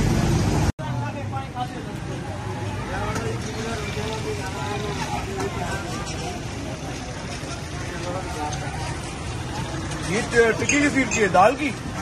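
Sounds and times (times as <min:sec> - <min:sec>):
motorbikes passing: 0:00.0 - 0:12.0
street traffic rumbling: 0:00.0 - 0:12.0
people talking: 0:00.8 - 0:12.0.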